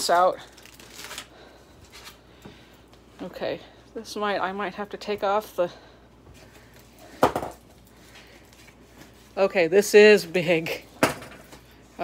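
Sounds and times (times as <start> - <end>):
plastic cover rustling: 0.0 - 2.3.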